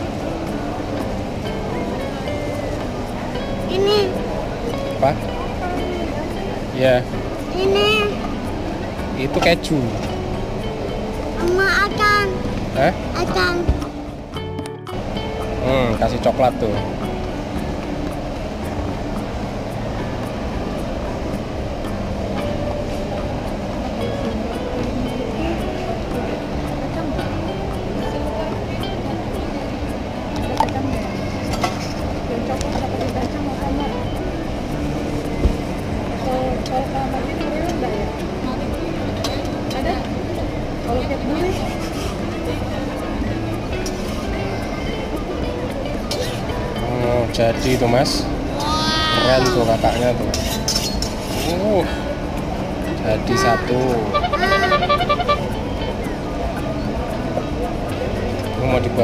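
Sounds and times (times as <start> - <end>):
people talking: 0.0 - 10.2, 11.2 - 13.8, 15.6 - 17.0, 23.1 - 50.4, 51.4 - 59.0
music playing: 0.0 - 59.0.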